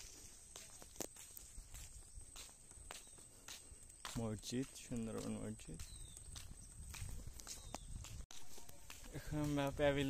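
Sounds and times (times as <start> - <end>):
footsteps clicking: 0.0 - 10.0.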